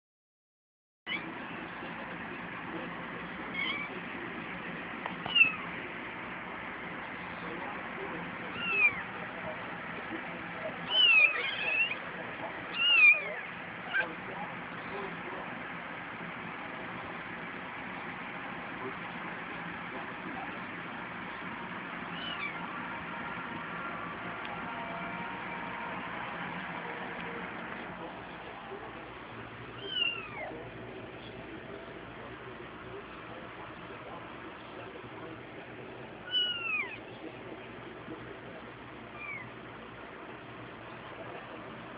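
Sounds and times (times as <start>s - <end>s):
kittens mewing: 3.4s - 4.1s, 5.2s - 5.8s, 8.5s - 9.1s, 10.8s - 14.1s, 22.0s - 22.8s, 29.7s - 30.6s, 36.2s - 37.0s, 39.1s - 39.5s.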